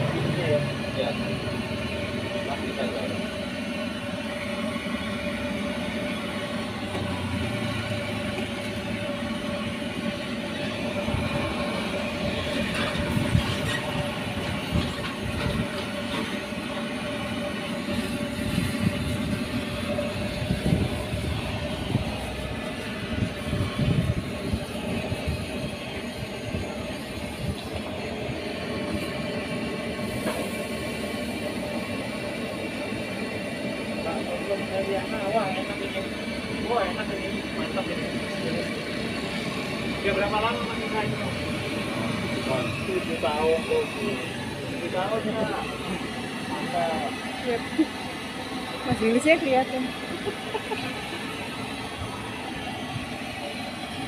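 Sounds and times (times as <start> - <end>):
constant hum: 0.0 - 54.0
gas stove burner rumbling: 0.0 - 54.0.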